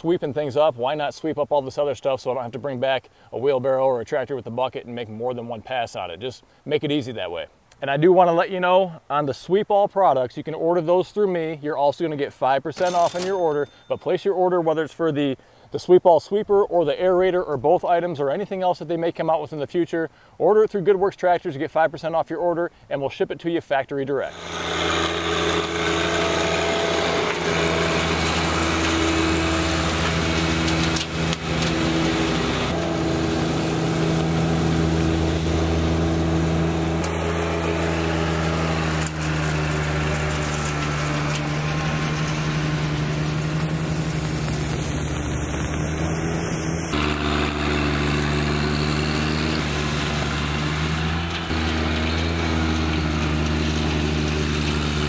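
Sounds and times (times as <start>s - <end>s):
tractor diesel engine running: 24.3s - 55.0s.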